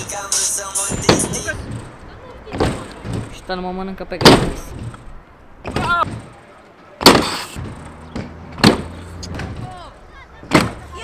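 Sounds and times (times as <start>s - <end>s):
scooter landing clack: 0.9s - 3.4s, 7.0s - 11.0s
sharp knocks: 7.0s - 9.8s, 10.4s - 10.8s.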